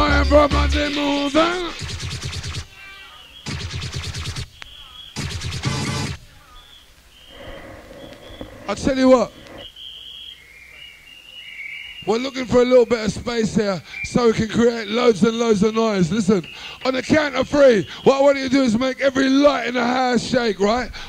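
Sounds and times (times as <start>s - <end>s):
crowd noise: 0.0s - 2.3s
rave music: 0.0s - 2.7s, 5.1s - 6.2s
crowd whistles: 4.4s - 12.4s.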